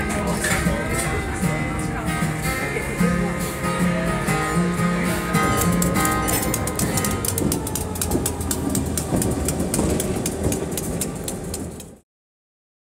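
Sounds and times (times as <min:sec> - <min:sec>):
low locomotive engine rumble: 0:00.0 - 0:12.0
train wheels clicking on rails: 0:05.3 - 0:12.0.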